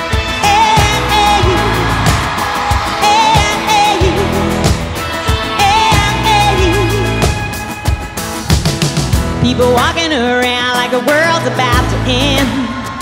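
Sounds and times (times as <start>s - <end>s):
steady drum beat: 0.0s - 9.5s
country-pop band playing: 0.0s - 13.0s.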